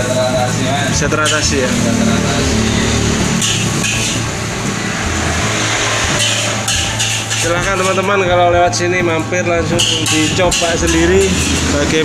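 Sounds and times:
gas burner hum: 0:00.0 - 0:08.2
metal spatula scraping wok: 0:01.2 - 0:08.1, 0:09.8 - 0:12.0
food sizzling in a wok: 0:03.4 - 0:07.9.

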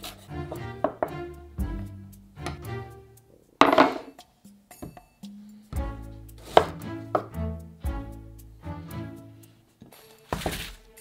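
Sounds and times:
knife chopping on wooden board: 0:06.4 - 0:07.3.

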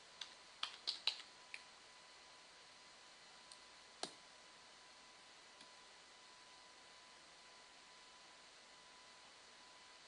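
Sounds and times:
computer keyboard key clicks: 0:00.2 - 0:01.3.

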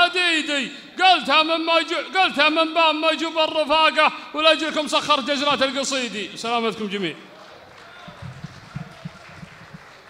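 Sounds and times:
faint murmur of hall: 0:06.9 - 0:10.0.

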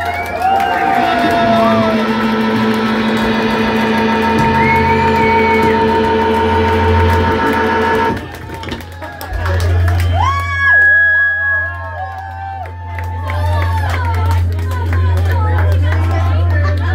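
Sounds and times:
rock band playing: 0:00.0 - 0:08.5
heavy bass drone: 0:00.0 - 0:08.8, 0:11.4 - 0:16.9.

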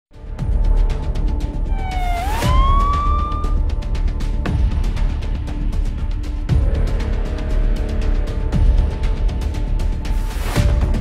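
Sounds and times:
title music with steady beat: 0:01.6 - 0:03.7
police siren: 0:01.7 - 0:03.7.

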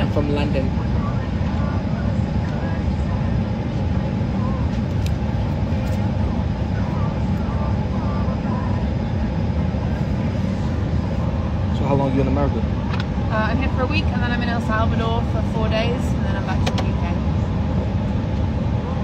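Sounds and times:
airliner cabin rumble: 0:00.0 - 0:19.0.

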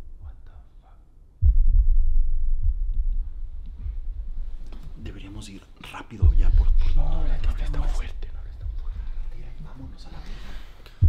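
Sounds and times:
low rumble: 0:00.0 - 0:05.5, 0:06.2 - 0:11.0
people whispering: 0:00.2 - 0:01.1, 0:04.7 - 0:11.0.

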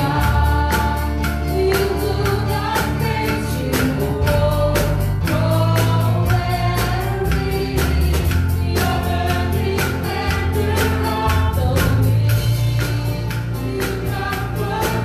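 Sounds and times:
group singing worship song: 0:00.0 - 0:15.0
keyboard and band accompaniment: 0:00.0 - 0:15.0.

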